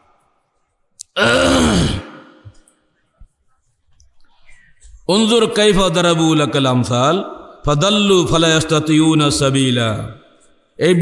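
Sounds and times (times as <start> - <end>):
man's long drawn-out vocal sound: 1.2 - 2.5.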